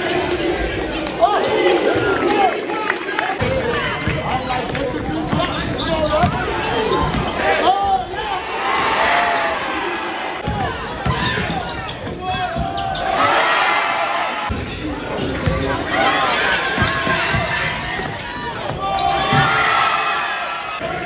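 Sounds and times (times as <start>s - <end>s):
people shouting and chatting: 0.0s - 21.0s
basketball bouncing on court: 3.4s - 7.3s, 10.4s - 13.0s, 16.7s - 19.6s.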